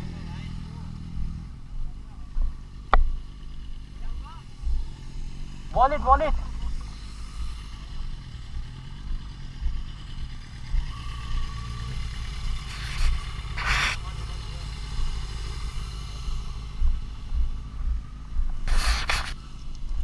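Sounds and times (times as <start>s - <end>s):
motorcycle engine idling: 0.0s - 20.0s
short rushing noises: 12.6s - 14.2s, 18.6s - 19.5s.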